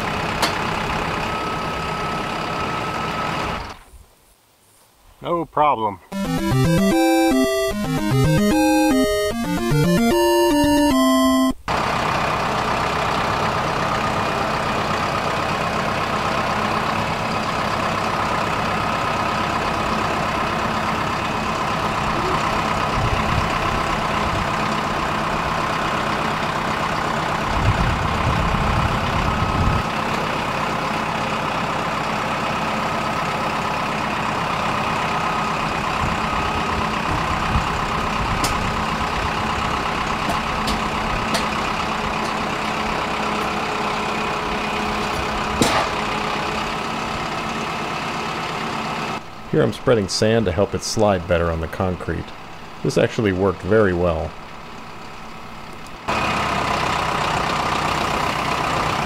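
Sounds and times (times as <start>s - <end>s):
tractor diesel engine under load: 0.0s - 3.7s, 11.7s - 59.0s.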